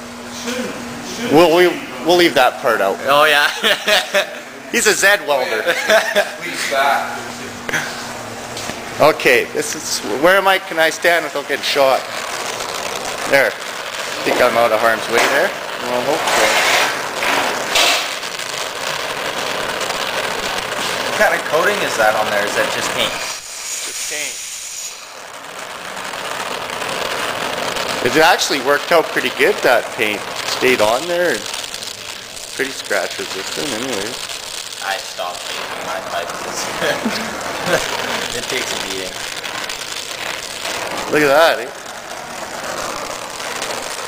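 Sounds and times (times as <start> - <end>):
gas torch flame hissing: 1.0 - 44.0.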